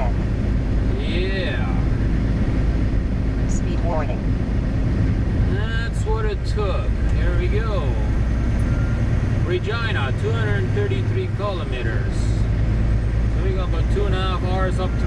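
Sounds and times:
people talking: 0.0 - 0.2, 0.9 - 1.9, 3.5 - 4.2, 5.4 - 8.2, 9.4 - 12.5, 13.4 - 15.0
road noise: 0.0 - 15.0
truck engine drone: 0.0 - 15.0.

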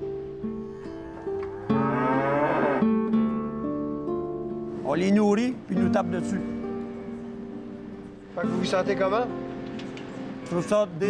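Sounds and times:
acoustic guitar music: 0.0 - 11.0
cow mooing: 1.0 - 3.1.

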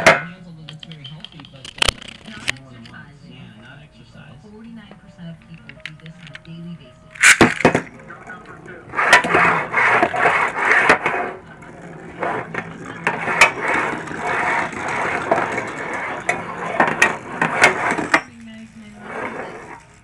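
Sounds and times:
spinning top launch burst: 7.2 - 7.9
spinning top scraping on table: 7.2 - 20.0.

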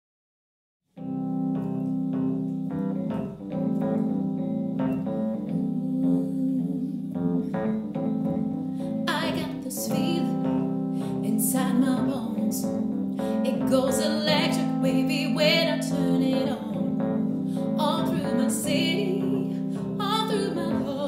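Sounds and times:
electric piano chords: 1.0 - 21.0
woman singing: 5.2 - 21.0.

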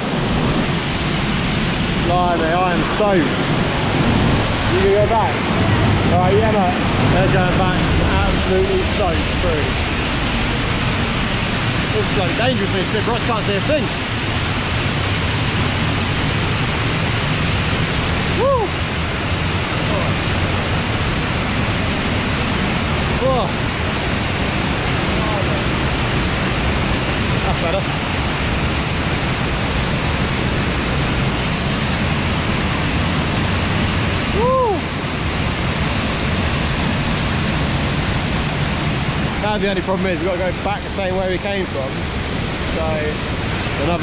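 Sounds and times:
waterfall rushing: 0.0 - 44.0.

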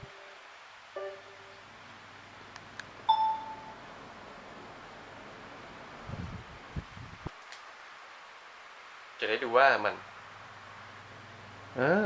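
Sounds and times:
short electronic beep: 3.1 - 3.8.

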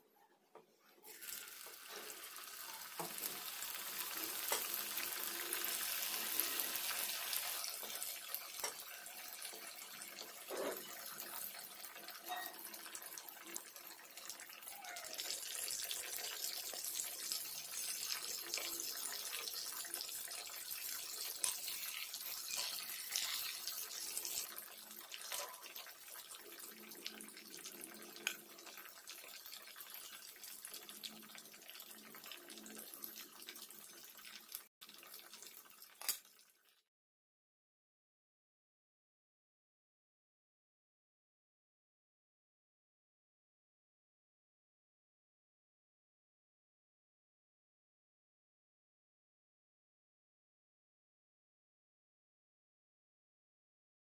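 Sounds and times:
fish deep-frying in oil: 1.1 - 36.9.

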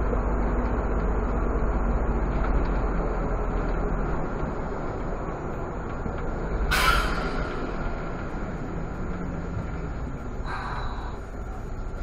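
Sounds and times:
bus engine and road noise: 0.0 - 12.0
air brakes hiss: 6.7 - 7.6.

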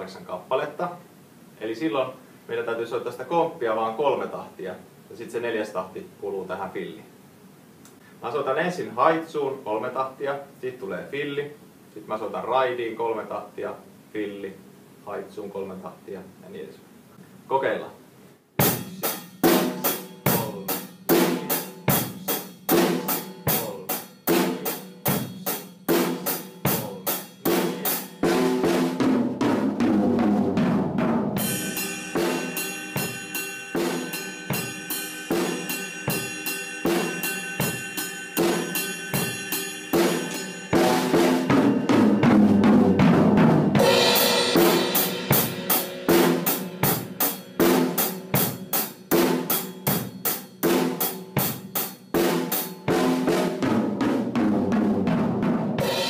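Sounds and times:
drum fills on snare and toms: 18.6 - 56.0
drum kit rock beat: 18.6 - 56.0
crash cymbal: 31.4 - 42.3, 43.8 - 50.6
ride cymbal ringing: 31.4 - 42.7, 43.8 - 52.9.

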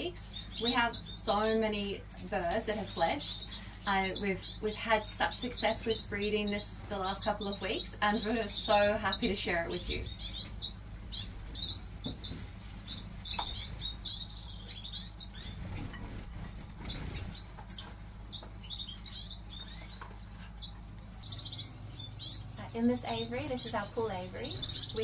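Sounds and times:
small birds chirping: 0.0 - 25.0.

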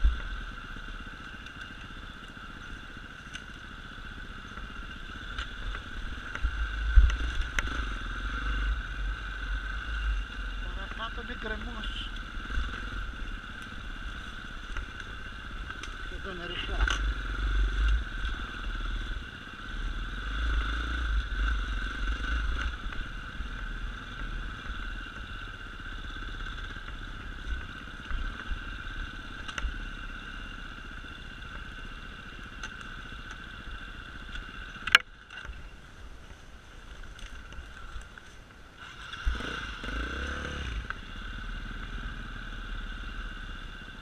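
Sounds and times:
motorcycle engine running: 0.0 - 44.0.

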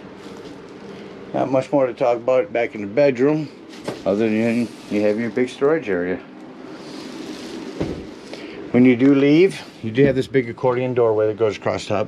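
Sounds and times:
bed platform thumping shut: 7.8 - 8.2.

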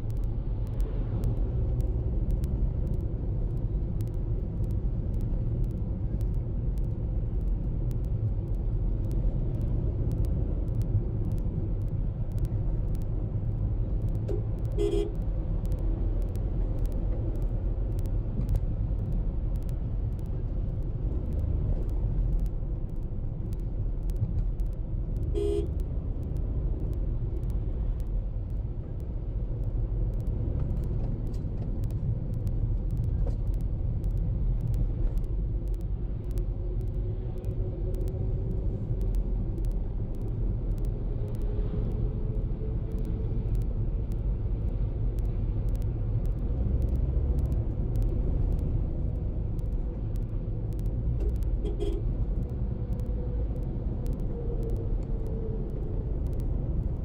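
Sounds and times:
car engine and tyres rumbling: 0.0 - 57.0
car horn toots: 14.8 - 15.1, 25.3 - 25.7, 51.6 - 52.0.

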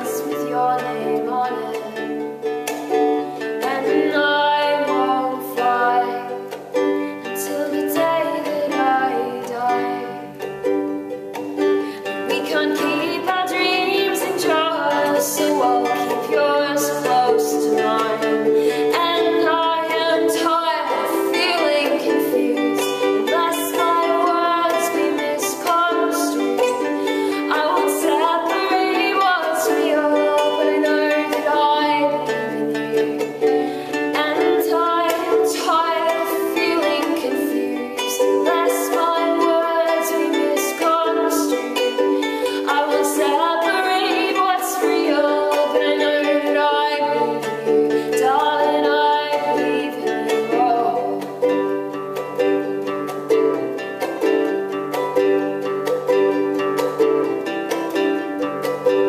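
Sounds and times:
ukulele strumming: 0.0 - 59.0.

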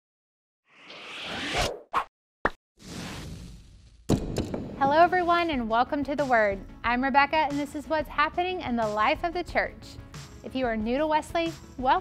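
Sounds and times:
whoosh: 2.8 - 5.2.

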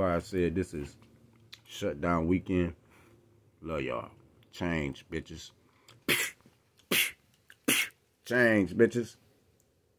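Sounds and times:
man's breathy bursts: 5.9 - 8.0.

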